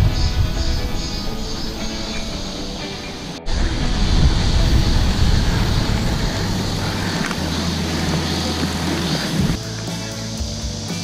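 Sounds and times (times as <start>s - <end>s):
wind buffeting microphone: 0.0s - 9.6s
steady low hum: 0.0s - 11.0s.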